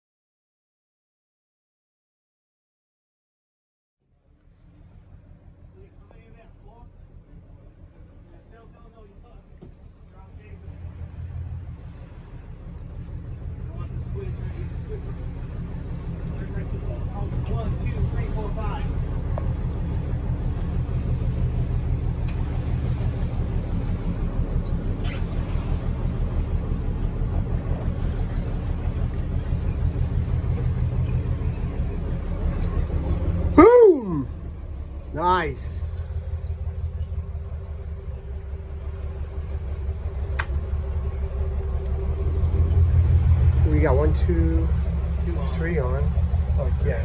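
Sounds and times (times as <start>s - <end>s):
boat engine running: 4.1s - 47.0s.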